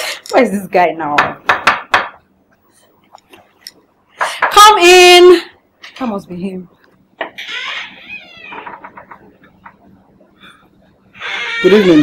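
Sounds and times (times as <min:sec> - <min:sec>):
door hinges creaking: 0:07.2 - 0:09.8, 0:11.1 - 0:12.0.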